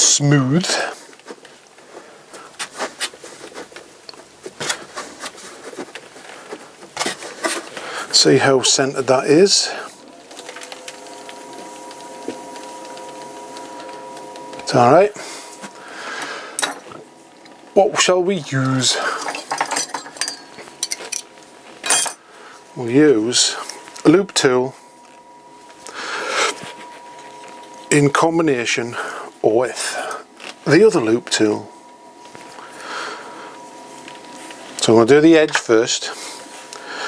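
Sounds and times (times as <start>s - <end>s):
metal tools clinking: 18.9s - 22.3s.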